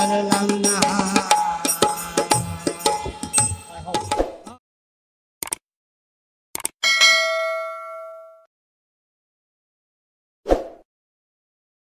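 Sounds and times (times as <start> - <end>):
notification bell ding: 6.8 - 8.5.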